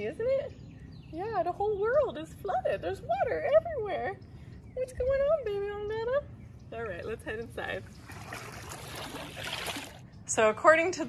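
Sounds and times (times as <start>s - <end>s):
wading through floodwater: 7.6s - 10.0s.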